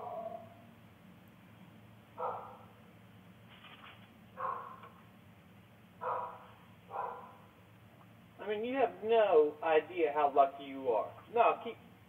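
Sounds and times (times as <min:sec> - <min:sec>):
dog barking: 0:02.2 - 0:02.7, 0:04.4 - 0:04.8, 0:06.0 - 0:07.4.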